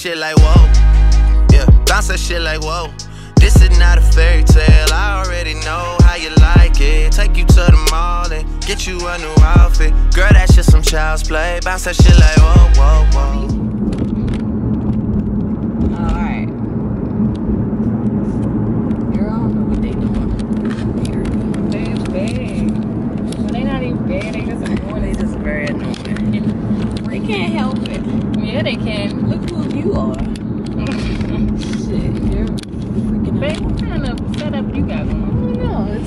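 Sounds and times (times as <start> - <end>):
car engine and road hum: 0.0 - 36.0
person talking: 19.2 - 22.7, 23.5 - 36.0.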